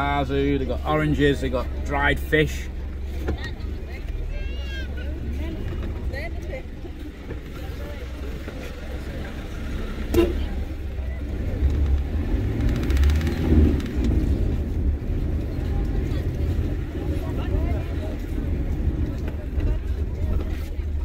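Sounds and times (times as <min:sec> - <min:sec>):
car engine and road rumble: 0:00.0 - 0:21.0
murmur of voices outside: 0:00.0 - 0:21.0.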